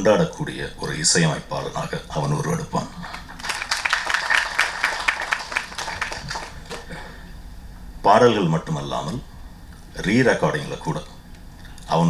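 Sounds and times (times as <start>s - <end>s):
audience applauding: 3.0s - 7.1s.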